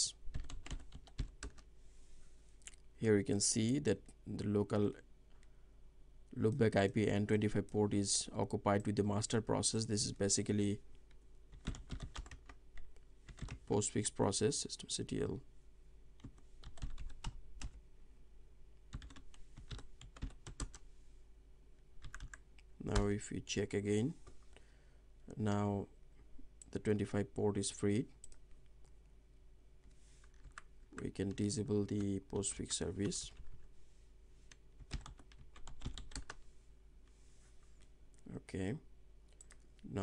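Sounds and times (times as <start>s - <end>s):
faint low hum: 0.0s - 40.0s
computer keyboard typing: 0.3s - 1.7s, 11.5s - 13.6s, 16.2s - 17.8s, 18.9s - 20.8s, 22.0s - 22.4s, 30.2s - 30.7s, 34.8s - 36.4s.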